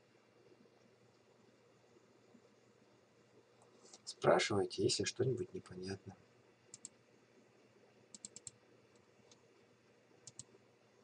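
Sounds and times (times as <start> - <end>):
computer mouse clicks: 6.7 - 7.0, 8.1 - 9.5, 10.2 - 10.6.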